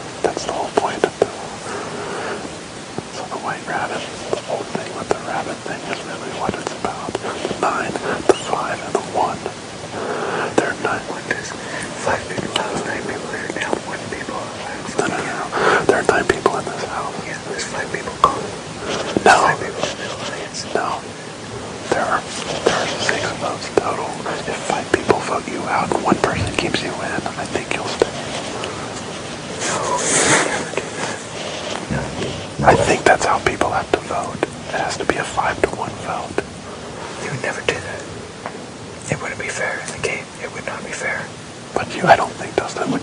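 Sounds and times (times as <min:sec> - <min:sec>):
men whispering: 0:00.0 - 0:43.0.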